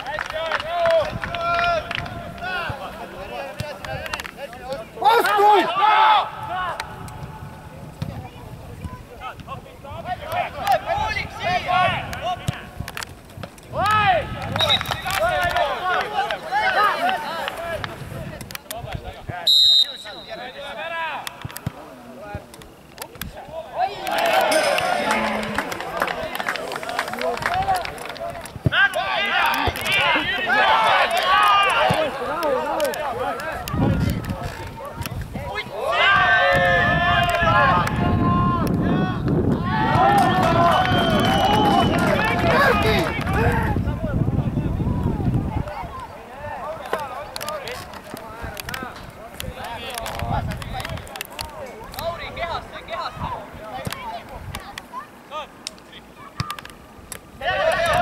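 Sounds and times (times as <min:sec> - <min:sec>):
long drawn-out shouts: 0:05.0 - 0:06.8, 0:35.7 - 0:43.8, 0:57.4 - 0:58.0
people shouting: 0:05.0 - 0:06.8, 0:23.8 - 0:26.8, 0:28.7 - 0:32.7, 0:57.4 - 0:58.0
voices shouting calls: 0:23.7 - 0:27.4.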